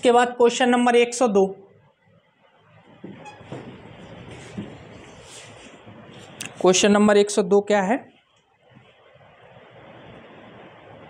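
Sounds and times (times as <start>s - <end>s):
clothing rustling on a microphone: 3.1s - 6.8s.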